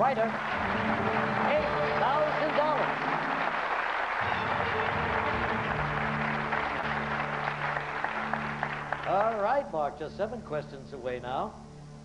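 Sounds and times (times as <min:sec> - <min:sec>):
audience applauding: 0:00.0 - 0:10.0
low droning game show music: 0:00.0 - 0:12.0.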